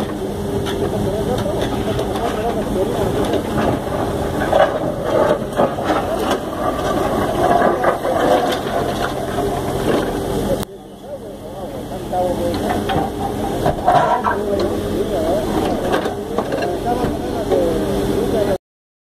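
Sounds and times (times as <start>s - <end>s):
diesel engine running: 0.0s - 18.6s
people talking: 0.0s - 18.6s
bucket scraping stones: 1.6s - 10.1s.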